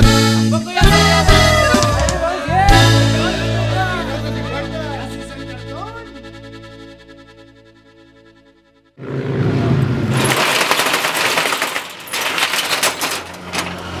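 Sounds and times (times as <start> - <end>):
band playing sustained chord: 2.2 - 9.0
steel shutter rattling: 10.1 - 14.0.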